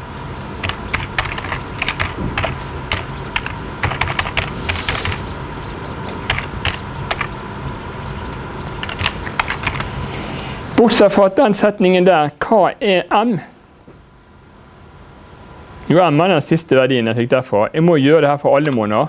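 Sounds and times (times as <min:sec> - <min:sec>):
faint hum: 0:00.0 - 0:19.0
computer keyboard typing: 0:00.6 - 0:05.3, 0:06.1 - 0:07.4, 0:08.7 - 0:09.9.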